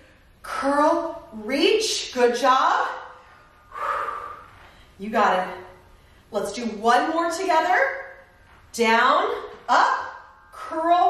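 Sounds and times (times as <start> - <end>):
woman's effortful breath: 3.6 - 5.0.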